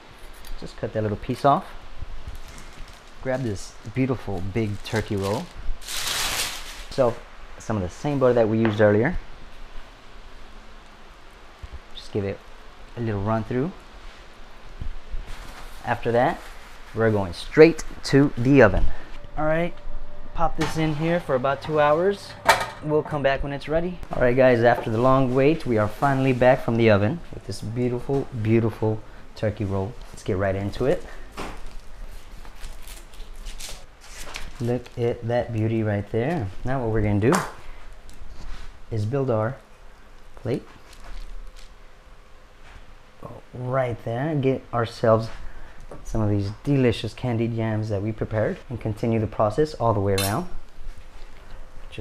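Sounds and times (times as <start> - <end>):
steady low hiss: 0.0 - 52.0.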